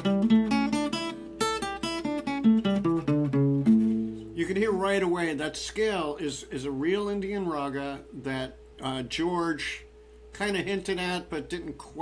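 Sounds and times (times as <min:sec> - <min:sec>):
acoustic guitar plucked notes: 0:00.0 - 0:04.5.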